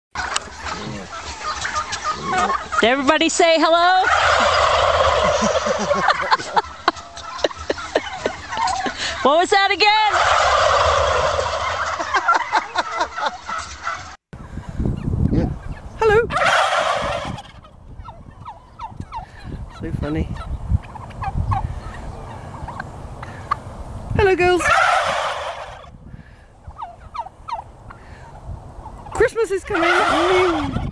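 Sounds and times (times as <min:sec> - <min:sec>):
toy speaker turkey gobble: 0:00.2 - 0:03.0, 0:04.0 - 0:09.0, 0:10.1 - 0:14.2, 0:16.3 - 0:19.2, 0:24.6 - 0:25.9, 0:29.0 - 0:30.9.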